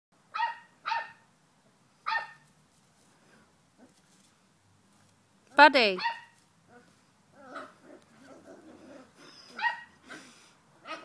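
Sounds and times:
dog barking: 0.4 - 1.2, 2.1 - 2.4, 6.0 - 6.4, 9.6 - 9.9.

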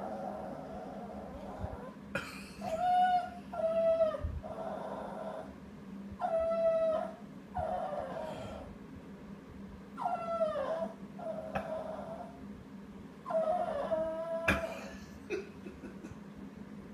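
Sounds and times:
small dog whining and howling: 0.0 - 2.0, 2.6 - 5.5, 6.2 - 8.7, 10.0 - 12.4, 13.2 - 14.8.

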